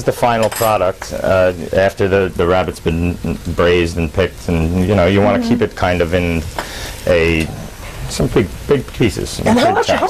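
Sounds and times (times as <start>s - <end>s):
man speaking: 0.0s - 10.0s
vegetables sizzling in a pan: 0.0s - 10.0s.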